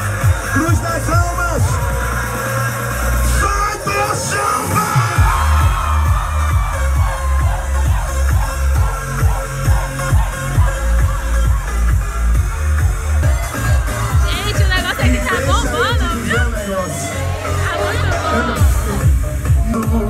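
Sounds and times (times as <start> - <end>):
electronic dance music: 0.0 - 20.0.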